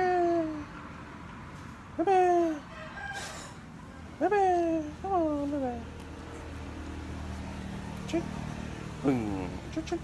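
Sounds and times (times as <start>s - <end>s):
rooster crowing: 2.7s - 3.6s.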